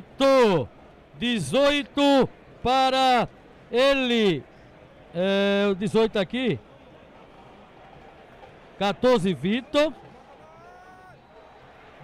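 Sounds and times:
faint open-air background noise: 0.0 - 12.0.

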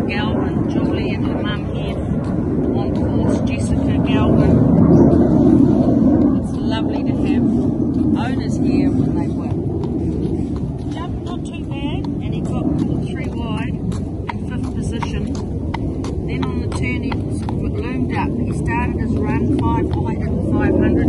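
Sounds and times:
low rumble: 0.0 - 21.0
horse hooves clicking on concrete: 0.3 - 21.0.

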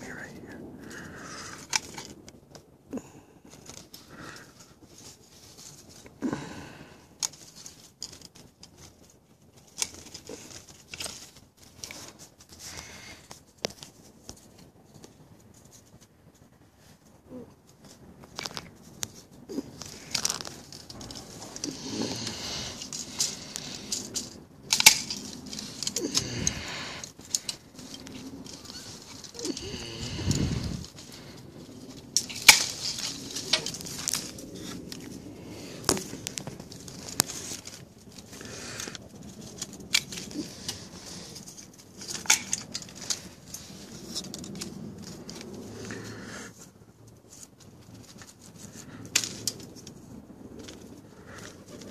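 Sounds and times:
leaves and branches rustling: 0.0 - 51.9.

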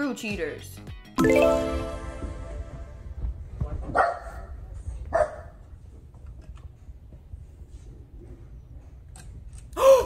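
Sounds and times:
dog barking: 3.9 - 5.6.

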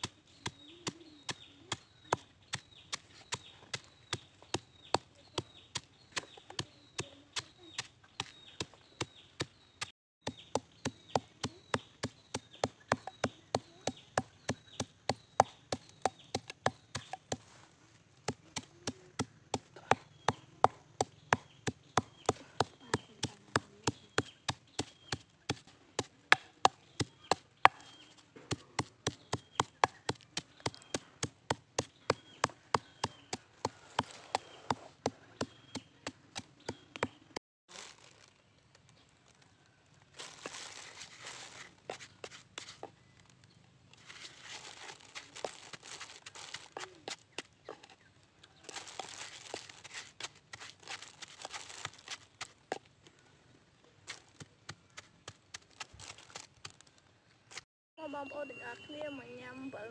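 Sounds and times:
wooden pestle pounding in mortar: 10.2 - 17.4, 28.5 - 37.2.

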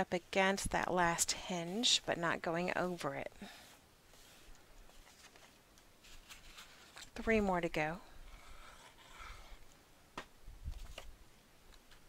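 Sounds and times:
cardstock rustling: 3.6 - 7.2.

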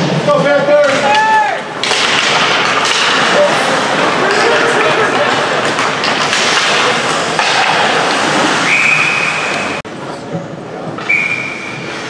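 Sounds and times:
crowd voices: 0.0 - 12.0
referee's whistle blasts: 8.6 - 9.8, 11.0 - 11.8.

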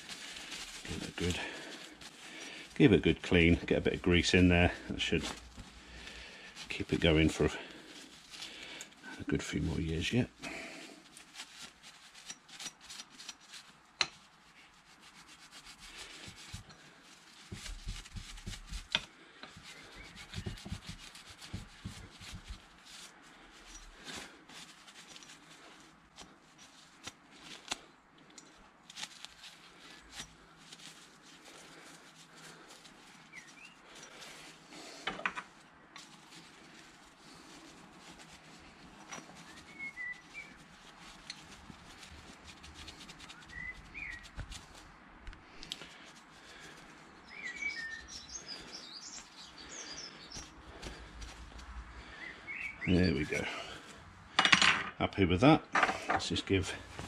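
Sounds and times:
cloth rag wiping metal parts: 0.0 - 27.8, 28.5 - 47.1, 47.9 - 54.1, 55.9 - 57.0
light clicks of metal parts: 26.1 - 29.0.

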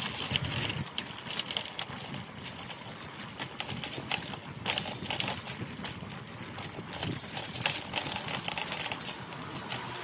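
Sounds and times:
clatter of hard clacks: 0.0 - 10.0.

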